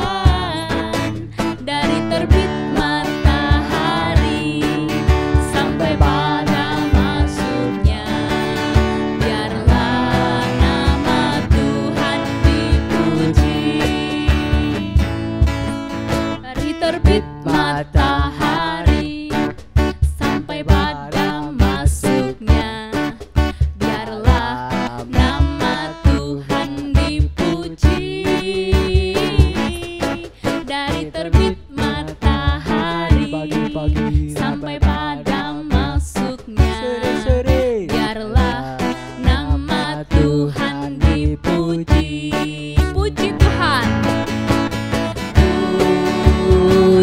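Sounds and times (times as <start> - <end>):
woman singing: 0.0 - 15.1, 16.3 - 44.2, 45.0 - 47.0
strummed acoustic guitar: 0.0 - 47.0
steady beat: 1.8 - 16.5, 32.2 - 40.3, 43.0 - 47.0.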